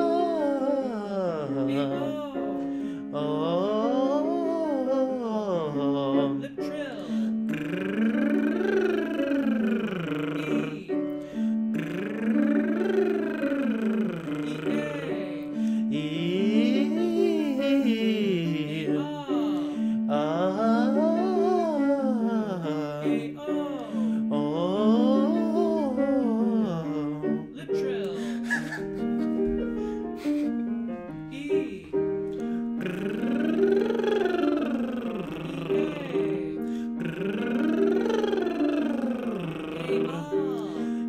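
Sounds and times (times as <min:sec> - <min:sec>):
man humming sliding pitch: 0:00.0 - 0:02.3, 0:03.2 - 0:27.5, 0:28.5 - 0:30.5, 0:32.8 - 0:41.0
held piano notes: 0:00.0 - 0:41.0.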